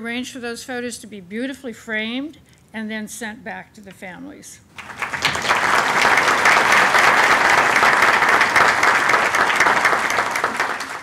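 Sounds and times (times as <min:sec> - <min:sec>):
audience applauding: 0:04.8 - 0:11.0.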